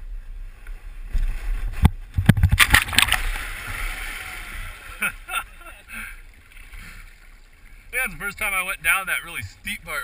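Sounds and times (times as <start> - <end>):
kayak sliding down dirt bank: 0.0 - 10.0
water splashing and rushing: 0.0 - 10.0.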